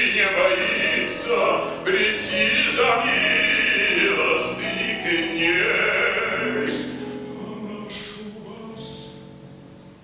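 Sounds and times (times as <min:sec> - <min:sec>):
man singing operatic bass: 0:00.0 - 0:09.5.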